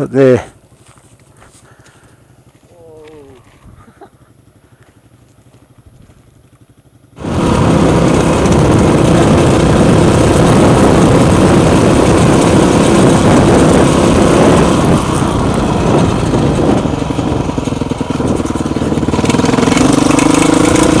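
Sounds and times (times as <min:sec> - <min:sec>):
dirt bike engine: 0:00.0 - 0:21.0
wind rush on microphone: 0:07.2 - 0:21.0.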